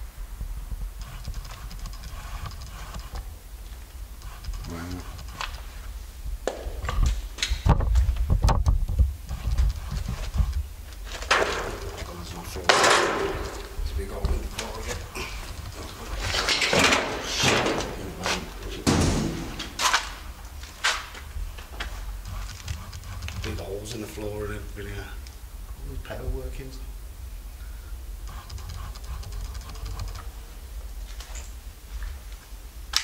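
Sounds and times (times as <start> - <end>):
scraping noises: 9.3 - 21.0
footsteps crunching over debris: 9.5 - 23.6.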